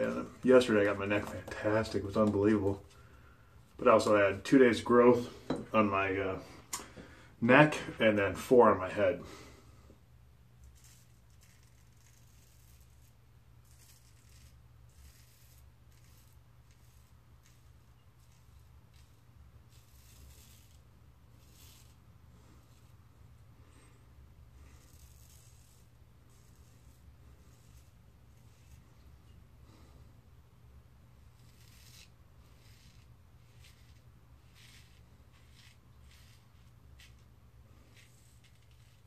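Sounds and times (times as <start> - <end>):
low steady hum: 0.0 - 39.0
razor scraping stubble: 10.6 - 23.1, 23.8 - 29.9, 31.2 - 39.0.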